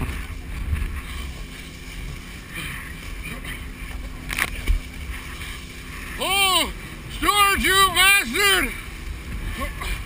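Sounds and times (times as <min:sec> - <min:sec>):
wind on microphone: 0:00.0 - 0:02.3
steady low rumble: 0:00.0 - 0:10.0
water hissing under water skis: 0:04.5 - 0:07.2.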